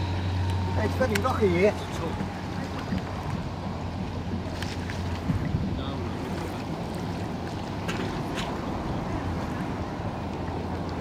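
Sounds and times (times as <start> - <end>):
wind on microphone: 2.2 - 11.0.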